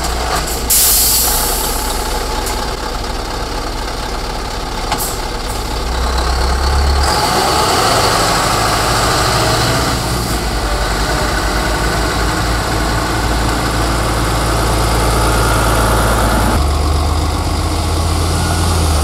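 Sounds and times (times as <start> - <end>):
diesel truck engines droning: 0.0 - 19.0.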